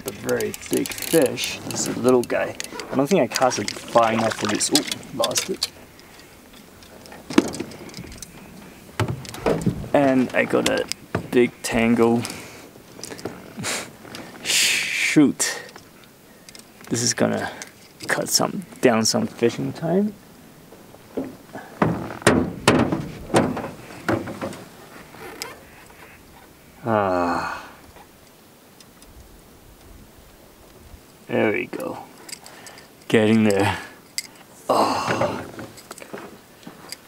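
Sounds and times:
fishing reel clicks and knocks: 0.0s - 2.8s
fishing gear knocking in metal boat: 21.1s - 24.7s.

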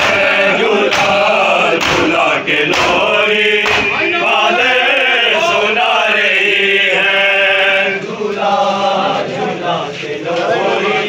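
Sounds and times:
sharp slaps: 0.0s - 4.2s
men chanting in unison: 0.0s - 11.0s.

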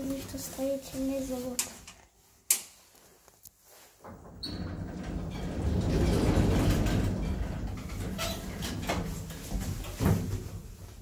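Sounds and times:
lift car rumbling in shaft: 4.3s - 10.0s.

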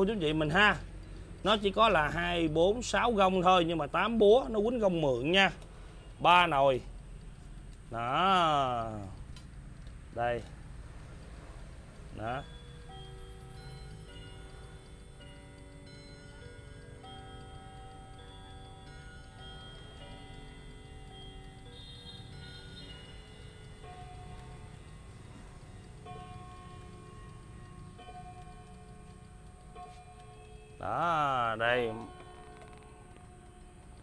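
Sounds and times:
clock chime on rod gongs: 12.1s - 34.0s.

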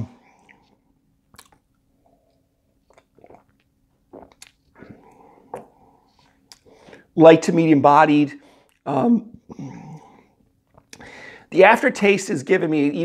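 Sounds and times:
lip smacks and tongue clicks: 1.2s - 6.7s, 10.6s - 11.0s.

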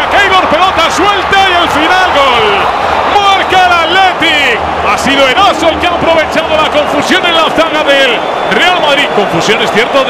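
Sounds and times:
man commentating: 0.0s - 10.0s.

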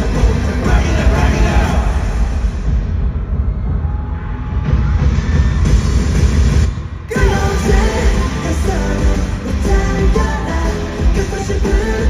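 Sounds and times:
live pop music with heavy bass: 0.0s - 3.0s, 4.2s - 12.0s.

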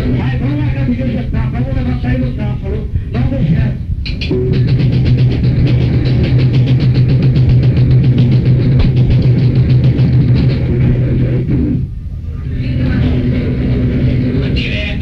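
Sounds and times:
amplifier hum: 0.0s - 15.0s
stage noise: 4.0s - 15.0s
live rock band playing: 4.2s - 11.8s.

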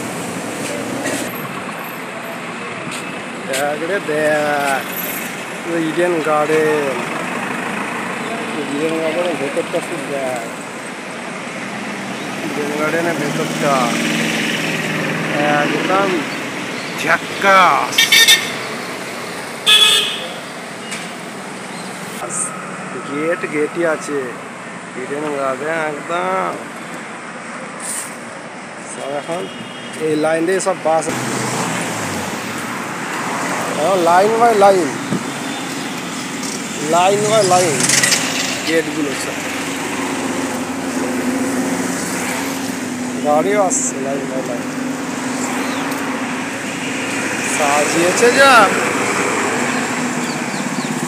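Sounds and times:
street noise: 0.0s - 51.0s
man calling out: 17.0s - 18.5s
vehicle horn honking: 17.4s - 18.7s, 19.6s - 20.5s, 29.2s - 30.2s.

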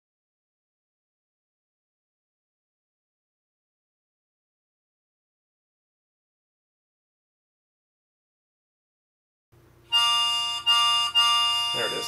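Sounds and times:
harmonica sample playing: 9.9s - 12.0s.

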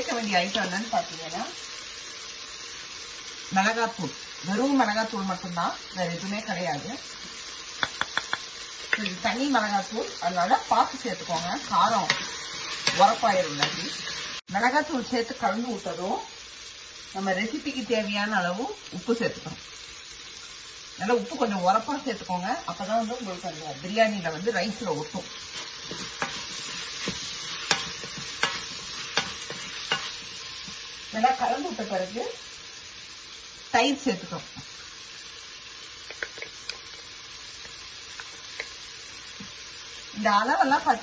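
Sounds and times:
vegetables sizzling in a pot: 0.0s - 41.0s
spoon knocking against pot: 7.8s - 9.1s
wooden spoon stirring: 25.5s - 30.8s.

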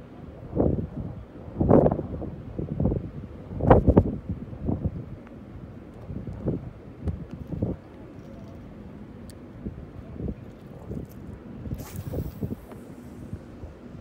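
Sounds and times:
wind buffeting microphone: 0.0s - 7.9s, 9.6s - 14.0s.

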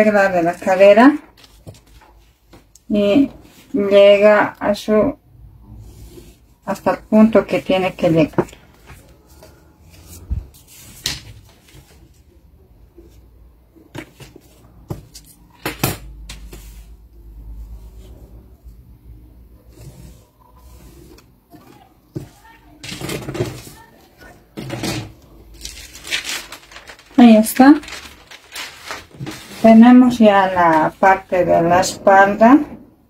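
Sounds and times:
paper rustling: 0.5s - 2.7s, 5.9s - 12.4s, 25.5s - 31.2s.

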